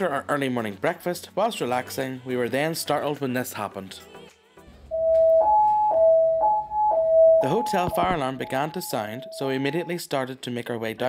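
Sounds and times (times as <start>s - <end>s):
two-tone fire alarm: 4.9s - 10.0s.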